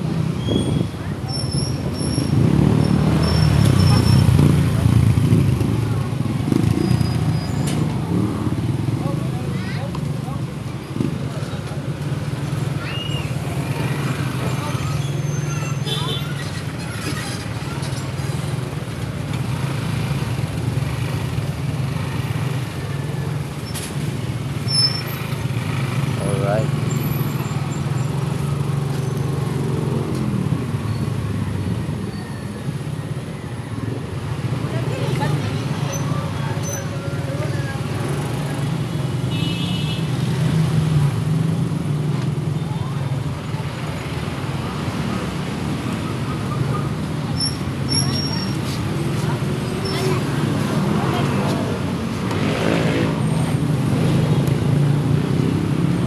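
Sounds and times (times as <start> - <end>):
hum of surrounding traffic: 0.0 - 56.0.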